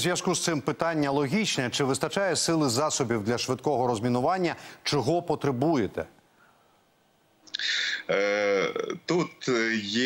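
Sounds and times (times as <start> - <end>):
man talking over video call: 7.5 - 10.0.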